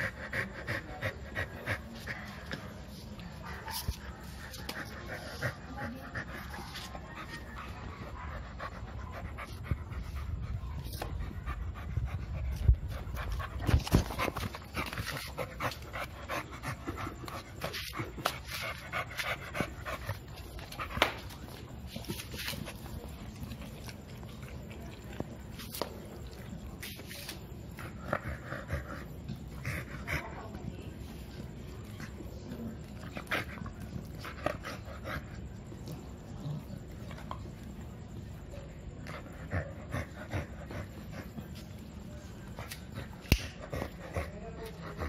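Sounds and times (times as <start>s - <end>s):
dog panting: 0.0s - 25.2s, 39.0s - 45.0s.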